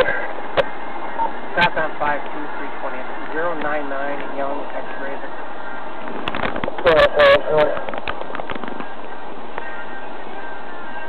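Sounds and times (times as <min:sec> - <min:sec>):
steady hiss: 0:00.0 - 0:11.0
crackling clicks: 0:07.6 - 0:09.7.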